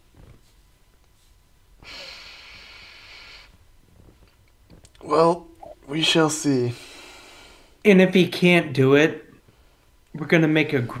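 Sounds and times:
steady hiss: 0.0s - 8.5s.

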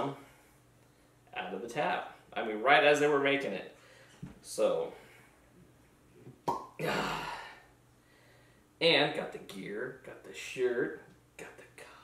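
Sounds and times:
man talking: 0.0s - 0.2s, 1.3s - 3.8s, 4.4s - 5.0s, 8.8s - 12.0s
bottle stopper pop: 6.4s - 6.8s.

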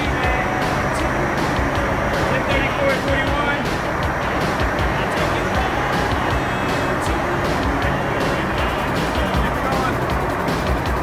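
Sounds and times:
aircraft engine and airflow rumble: 0.0s - 11.0s
music: 0.0s - 11.0s.

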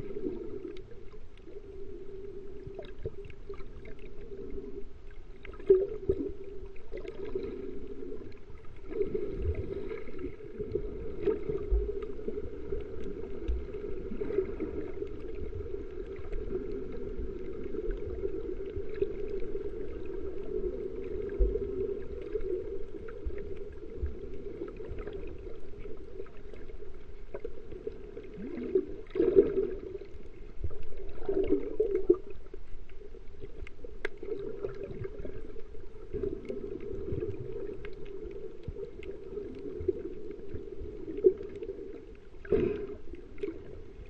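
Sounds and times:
muffled underwater rumble: 0.0s - 44.0s
water surges: 0.0s - 44.0s.

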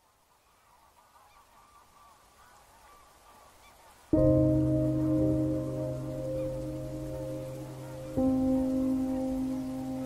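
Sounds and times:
faint honking bird calls: 0.1s - 10.0s.

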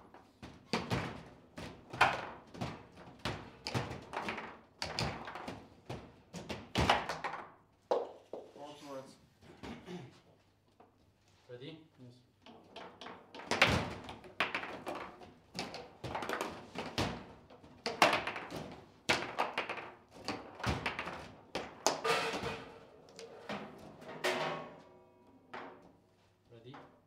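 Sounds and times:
table football ball clacks: 12.4s - 17.2s, 17.8s - 22.0s.

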